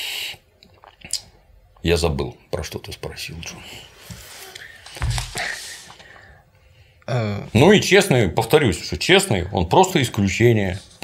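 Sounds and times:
mouth clicks: 0.6 - 1.4
man speaking: 7.1 - 11.0.

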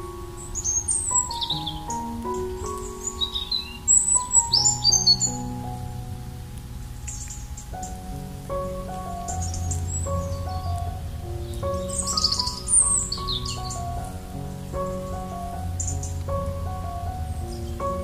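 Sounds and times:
soft piano music: 0.0 - 18.0
birds chirping: 0.3 - 6.2, 6.8 - 18.0.

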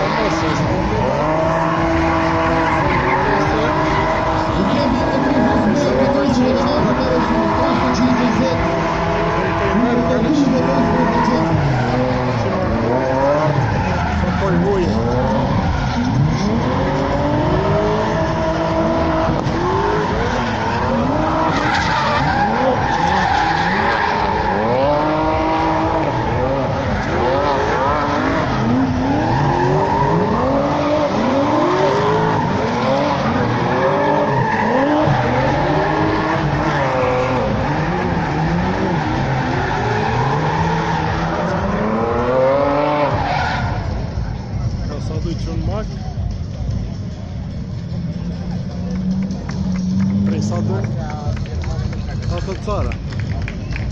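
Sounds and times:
racing car engines revving: 0.0 - 53.9.

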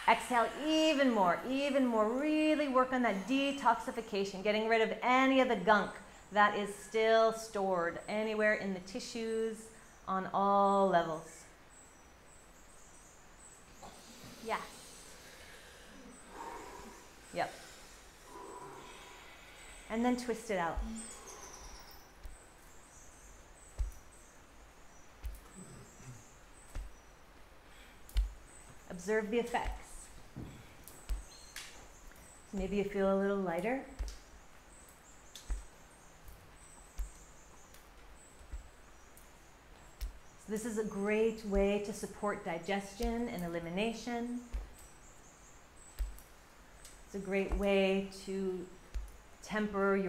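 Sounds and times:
faint bird chirping: 0.0 - 50.0
arms slapping against body: 23.7 - 24.1, 25.2 - 27.0, 28.1 - 28.8, 29.4 - 32.8, 33.6 - 34.3, 34.9 - 38.7, 39.8 - 40.2, 42.9 - 43.4, 45.9 - 47.8, 48.9 - 49.2.

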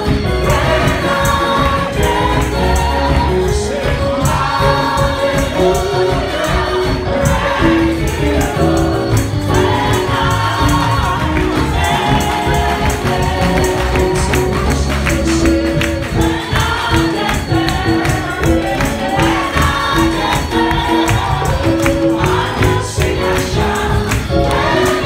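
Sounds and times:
gospel choir singing: 0.0 - 25.0
keyboard: 0.0 - 25.0
percussion beat: 0.0 - 25.0.

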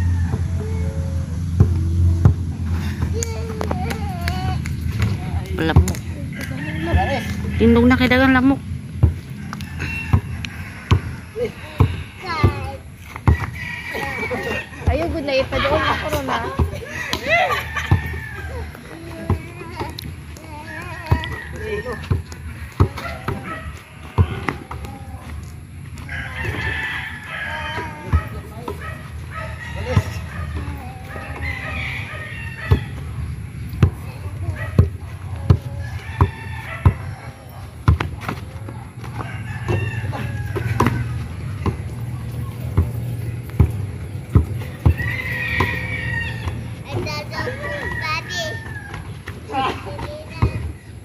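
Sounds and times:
rooster crowing: 0.0 - 1.2, 6.2 - 8.6, 9.2 - 18.9, 20.5 - 25.3, 25.9 - 33.2, 35.3 - 37.7, 39.0 - 41.8, 44.6 - 49.3
basketball bouncing on grass: 1.5 - 14.0, 16.0 - 18.1, 19.1 - 25.0, 27.8 - 28.9, 29.8 - 30.8, 32.5 - 50.8
boys' high wavering cries: 2.7 - 5.0, 11.1 - 25.6, 26.4 - 28.6, 29.2 - 33.0, 44.9 - 50.8.

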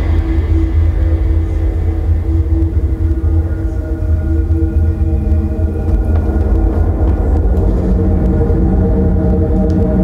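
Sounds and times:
deep rumble over loudspeakers: 0.0 - 10.0
faint held drone: 0.0 - 10.0.

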